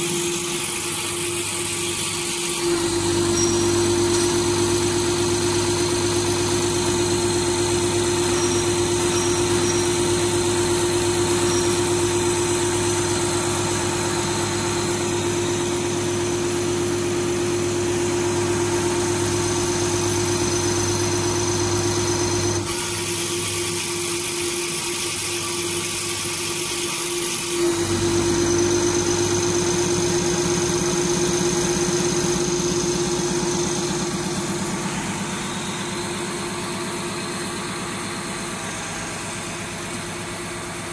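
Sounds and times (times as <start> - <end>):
constant mechanical whine: 0.0 - 40.9
pump test bench humming: 0.0 - 40.9.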